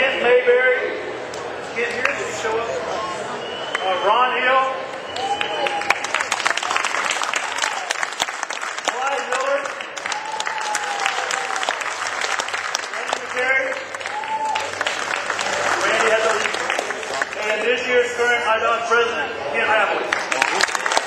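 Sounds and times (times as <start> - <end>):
audience applauding: 5.1 - 17.6, 20.1 - 21.0.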